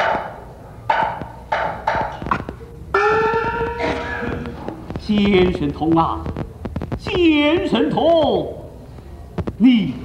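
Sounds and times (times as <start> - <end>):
held pitched note: 3.0 - 4.6.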